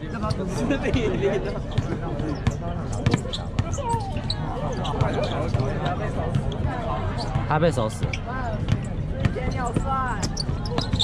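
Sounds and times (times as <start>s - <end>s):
crowd chatter and calls: 0.0s - 11.0s
basketball bouncing on court: 1.7s - 11.0s.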